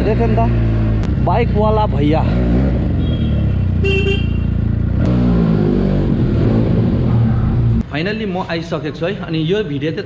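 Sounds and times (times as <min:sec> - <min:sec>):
motorcycle engine revving: 0:00.0 - 0:07.8.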